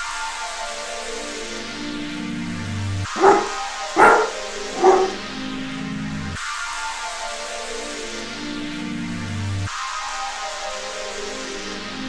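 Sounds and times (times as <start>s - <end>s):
sampled dog barks: 3.2s - 5.2s.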